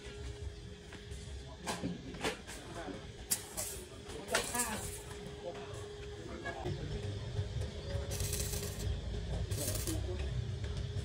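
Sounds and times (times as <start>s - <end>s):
welding arc crackling and hissing: 3.3s - 5.1s, 8.1s - 10.4s.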